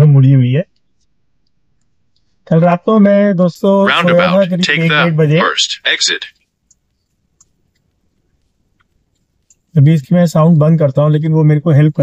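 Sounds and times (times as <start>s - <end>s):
man speaking: 3.8s - 6.3s.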